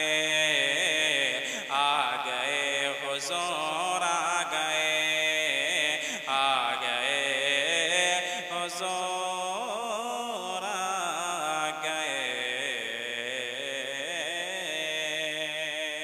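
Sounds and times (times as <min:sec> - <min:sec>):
man singing devotional song: 0:00.0 - 0:16.0.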